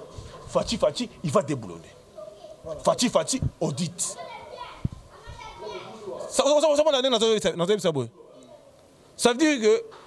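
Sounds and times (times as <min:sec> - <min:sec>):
faint background voices: 0:00.0 - 0:06.6, 0:08.1 - 0:10.0.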